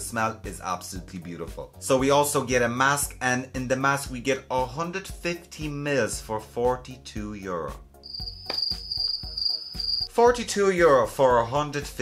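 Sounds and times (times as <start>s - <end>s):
crickets chirping: 8.0s - 10.1s.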